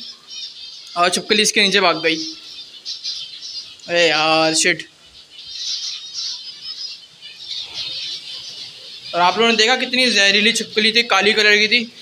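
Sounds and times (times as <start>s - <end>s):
zebra finches chirping: 0.0s - 12.0s.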